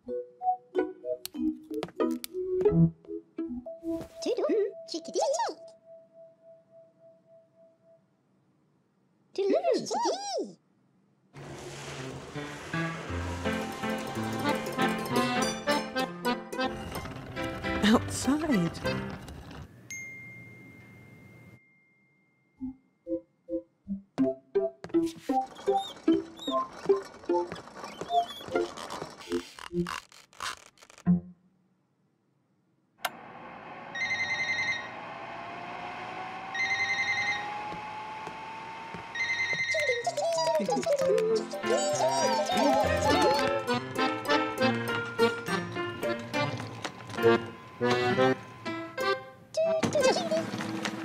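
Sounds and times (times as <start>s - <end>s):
hood hair dryer blowing and whining: 33.1s - 39.4s
children's show background music: 40.0s - 46.7s.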